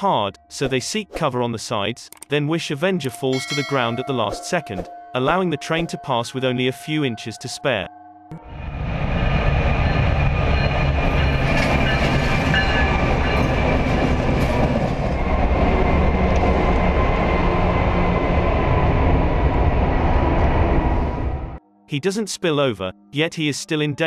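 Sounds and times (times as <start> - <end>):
train wheels on rails: 9.1 - 18.2.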